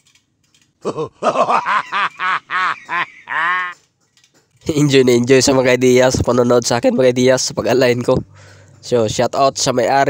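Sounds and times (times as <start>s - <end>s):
comic laugh sound effect: 0.8s - 3.8s.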